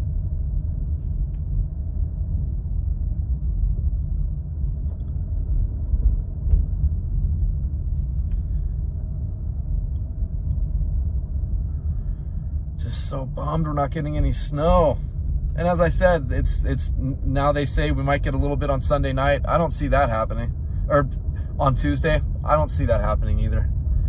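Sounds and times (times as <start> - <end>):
car engine and tyres on road: 0.0 - 24.0.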